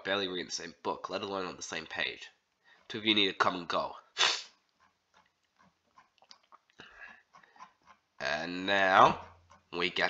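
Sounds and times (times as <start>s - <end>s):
man breathing: 2.6s - 2.9s, 6.8s - 7.8s.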